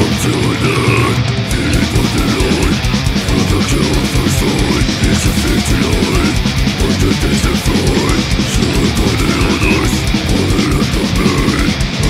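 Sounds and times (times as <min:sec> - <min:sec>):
distorted guitars: 0:00.0 - 0:12.0
fast dense drumming: 0:00.0 - 0:12.0
high squealing guitar note: 0:00.0 - 0:12.0.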